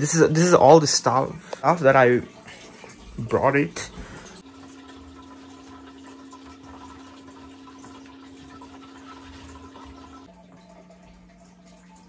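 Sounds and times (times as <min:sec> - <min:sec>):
water trickling: 0:00.0 - 0:12.0
low filter hum: 0:10.2 - 0:12.0.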